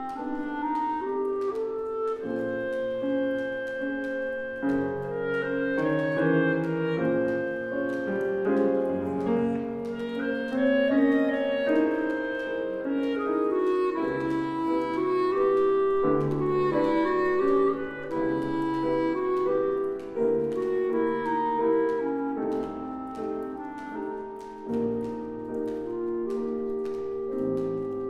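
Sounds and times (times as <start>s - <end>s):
clarinet legato melody: 0.0s - 28.0s
grand piano: 0.0s - 28.0s.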